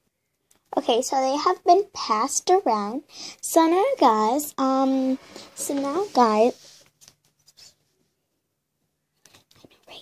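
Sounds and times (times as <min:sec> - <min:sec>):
faint whispering: 0:09.5 - 0:10.0.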